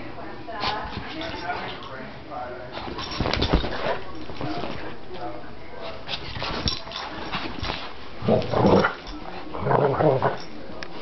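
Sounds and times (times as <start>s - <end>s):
dogs play-fighting: 2.7s - 5.0s, 5.8s - 11.0s.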